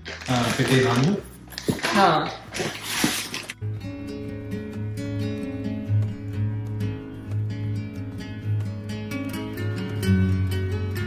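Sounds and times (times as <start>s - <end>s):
plucked acoustic guitar music: 0.0s - 11.0s.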